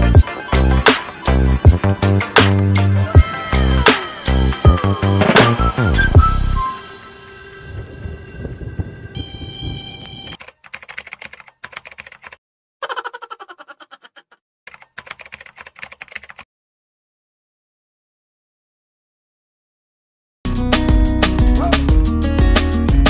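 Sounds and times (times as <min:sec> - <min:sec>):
background music: 0:00.0 - 0:09.2, 0:20.5 - 0:23.0
typewriter typing sound effect: 0:10.3 - 0:12.4, 0:14.7 - 0:16.4.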